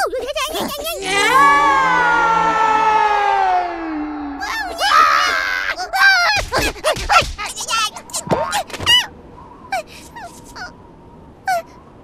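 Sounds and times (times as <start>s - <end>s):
squeaky cartoon yelps: 0.9s - 2.1s.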